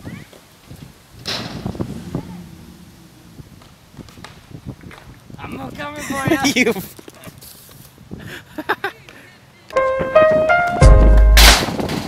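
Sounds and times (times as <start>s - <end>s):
bike tyres rolling on concrete: 0.2s - 8.7s
person laughing: 8.2s - 9.1s.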